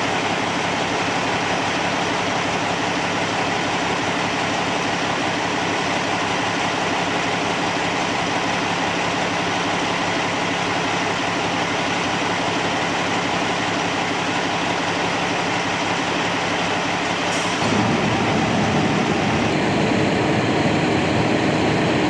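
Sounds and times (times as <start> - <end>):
diesel engines running: 0.0 - 22.0.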